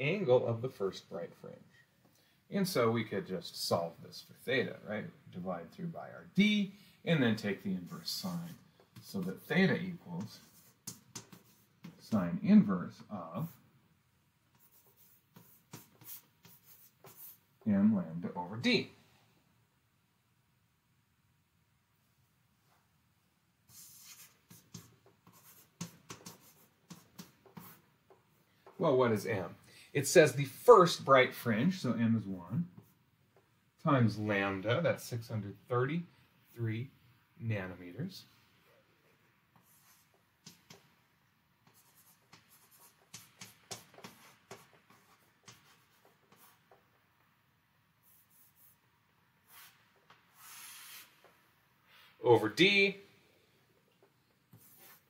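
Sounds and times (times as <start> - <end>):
chalk scratching on blackboard: 10.2 - 12.2, 14.5 - 17.5, 23.7 - 27.8, 39.6 - 40.8, 41.6 - 46.8, 48.0 - 48.8, 49.4 - 51.3, 54.5 - 55.0.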